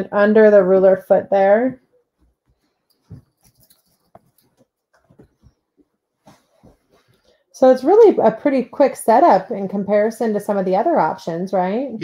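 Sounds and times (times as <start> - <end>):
quilt rustling and bumping: 2.1 - 7.2.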